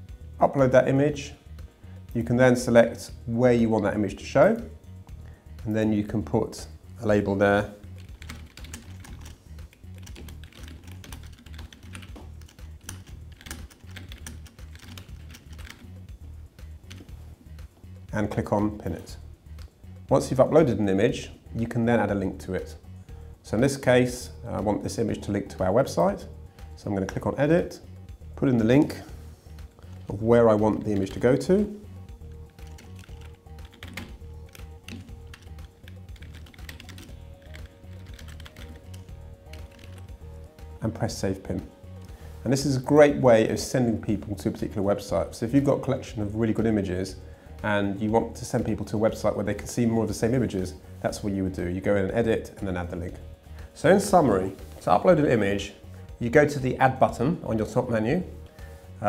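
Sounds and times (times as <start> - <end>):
soft music with pulsing bass: 0.0 - 59.0
keyboard typing: 8.0 - 15.9, 32.4 - 40.2.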